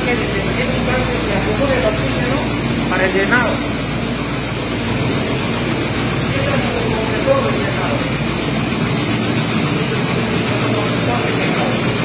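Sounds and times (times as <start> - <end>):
compressors running: 0.0 - 12.0.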